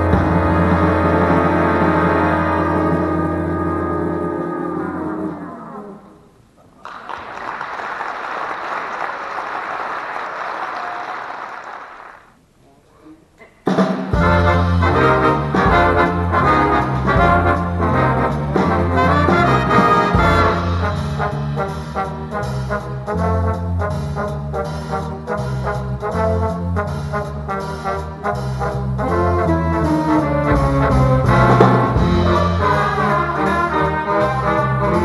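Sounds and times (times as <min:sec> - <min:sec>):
jazz big band playing: 0:00.0 - 0:06.2, 0:13.7 - 0:35.0
applause: 0:06.7 - 0:12.4.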